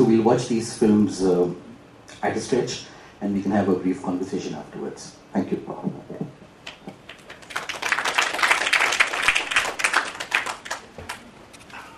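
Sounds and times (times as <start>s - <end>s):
audience applauding: 6.7s - 11.2s.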